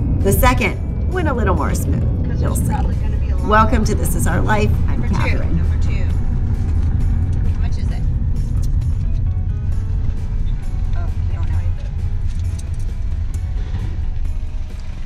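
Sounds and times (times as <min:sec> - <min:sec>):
background music: 0:00.0 - 0:15.0
car cabin road and engine rumble: 0:00.0 - 0:15.0.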